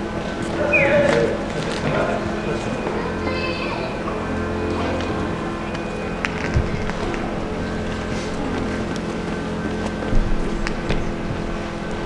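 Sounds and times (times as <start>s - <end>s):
vehicle engines idling: 0.0s - 12.0s.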